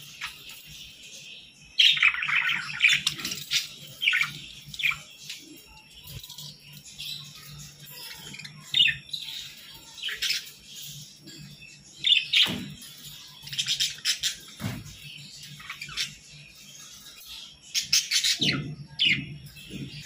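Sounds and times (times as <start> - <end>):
budgerigars chirping and chattering: 0.0 - 20.0.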